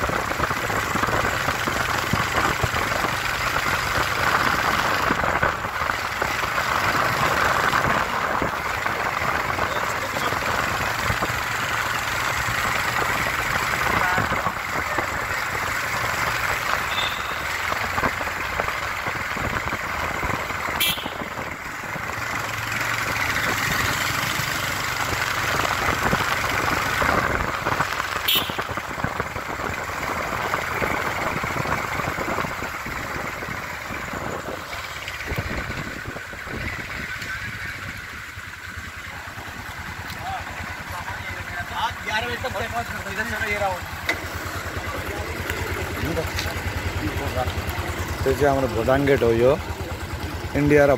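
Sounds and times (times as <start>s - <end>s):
vehicle and motorbike engines: 0.0s - 50.9s
crowd chatter: 44.1s - 50.6s.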